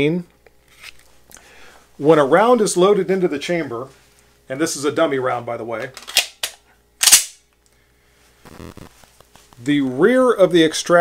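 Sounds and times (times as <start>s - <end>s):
pistol slide snapping forward: 6.0s - 7.4s.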